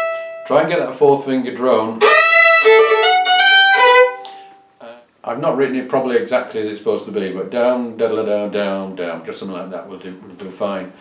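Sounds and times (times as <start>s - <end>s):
fiddle bowing over drone note: 0.0s - 0.4s, 2.0s - 4.5s.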